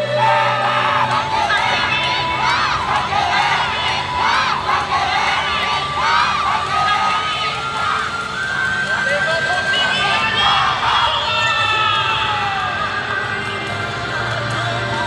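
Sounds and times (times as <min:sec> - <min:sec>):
crowd shouting and cheering: 0:00.0 - 0:15.0
dance music: 0:00.0 - 0:15.0.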